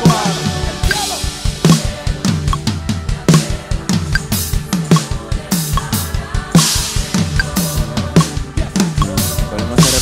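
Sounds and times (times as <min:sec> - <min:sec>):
band music: 0:00.0 - 0:10.0
drum kit groove: 0:00.0 - 0:10.0.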